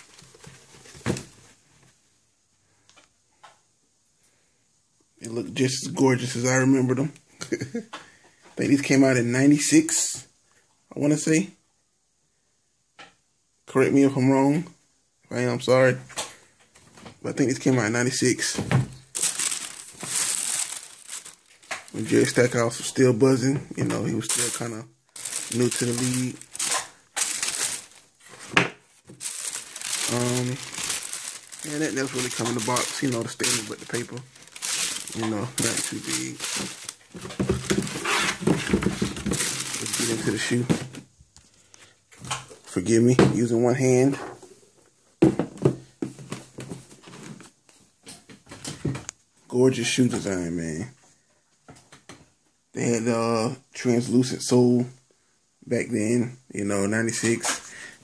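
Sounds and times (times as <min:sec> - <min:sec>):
wrapping paper crinkling: 0:00.0 - 0:00.5, 0:19.1 - 0:40.6.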